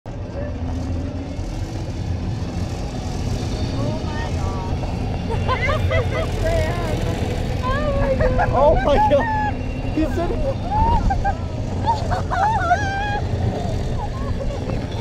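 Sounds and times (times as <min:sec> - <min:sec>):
cable car rumble: 0:00.0 - 0:15.0
excited voices: 0:03.7 - 0:15.0.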